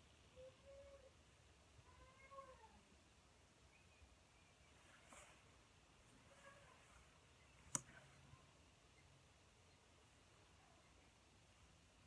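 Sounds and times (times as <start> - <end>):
faint animal calls: 0.2 - 1.2.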